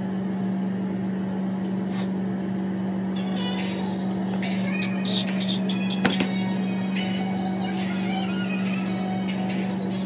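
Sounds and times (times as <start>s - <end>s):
exhaust fan humming: 0.0s - 10.0s.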